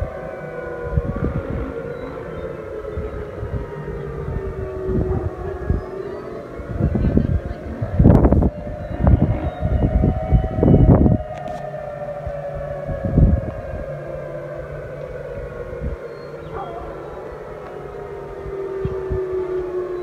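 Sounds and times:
warning siren falling tone: 0.0 - 20.0.

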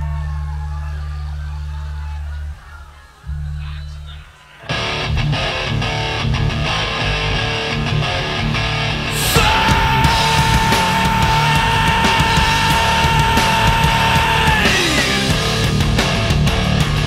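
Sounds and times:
heavy rock band playing: 4.7 - 17.0.

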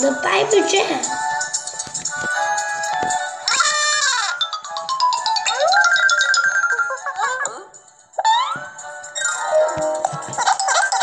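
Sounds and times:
playful cartoon music: 0.0 - 11.0.

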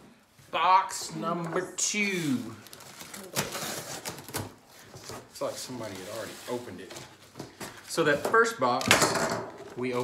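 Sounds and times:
tape and cardboard ripping: 2.8 - 4.6.

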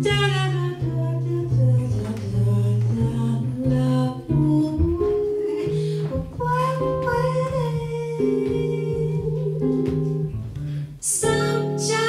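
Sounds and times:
woman singing jazz: 0.0 - 12.0.

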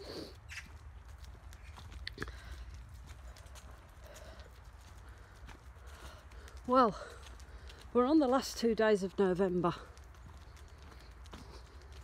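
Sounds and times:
footsteps on leafy tarmac: 0.0 - 12.0.

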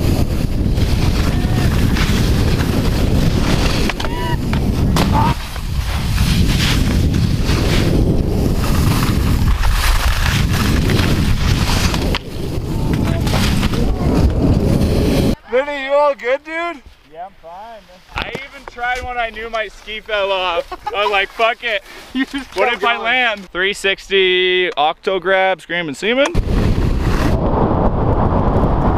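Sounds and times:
skis scraping over snow: 0.0 - 15.4, 17.8 - 23.5
wind rushing on microphone: 0.0 - 15.4, 26.4 - 28.9
person speaking: 15.4 - 26.3.

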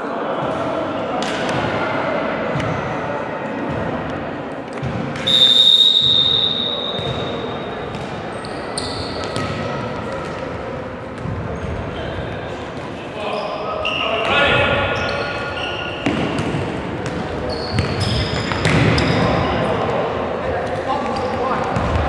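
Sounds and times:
referee's whistle blast: 5.2 - 7.1
ball kicked and bouncing: 16.0 - 19.0.

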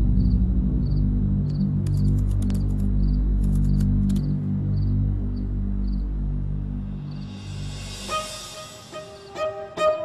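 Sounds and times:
low background music: 0.0 - 10.0
cricket chirping: 0.2 - 6.1, 7.0 - 9.6.

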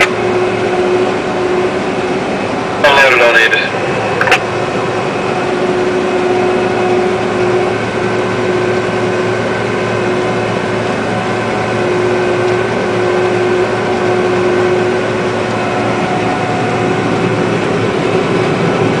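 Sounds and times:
combine harvester engine drone: 0.0 - 19.0.

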